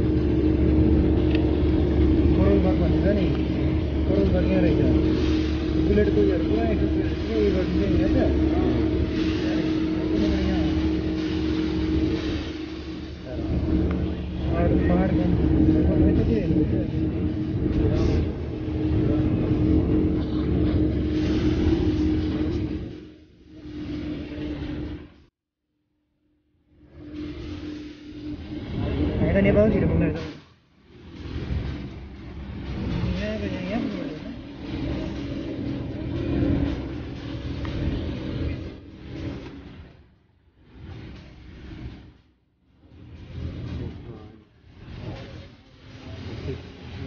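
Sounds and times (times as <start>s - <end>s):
indistinct voices: 0.0s - 25.0s
car engine and road drone: 0.0s - 25.3s, 26.6s - 47.0s.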